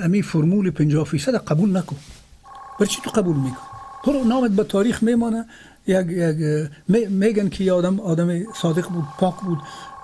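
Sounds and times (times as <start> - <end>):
steady two-pitch electronic tone: 2.5 - 4.7, 8.5 - 10.0
man talking: 2.8 - 10.0.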